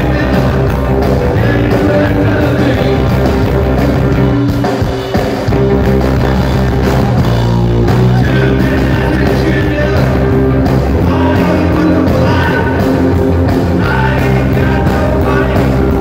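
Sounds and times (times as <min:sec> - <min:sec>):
electric bass: 0:00.0 - 0:16.0
electric guitar: 0:00.0 - 0:16.0
live band playing through a pa: 0:00.0 - 0:16.0.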